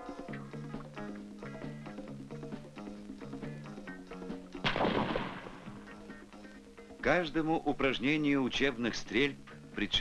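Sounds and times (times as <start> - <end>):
background music: 0.0 - 10.0
sniper rifle shot: 4.6 - 5.8.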